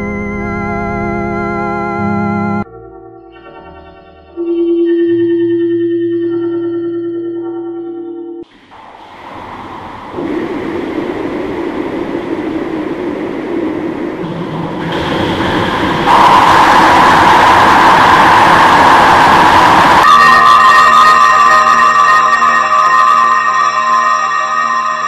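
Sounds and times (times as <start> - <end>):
steady musical tones: 8.4 - 25.0
dense rushing noise: 8.5 - 21.7.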